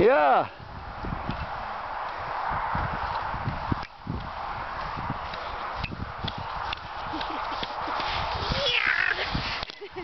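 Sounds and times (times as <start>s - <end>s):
skis swishing over snow: 6.4s - 10.0s.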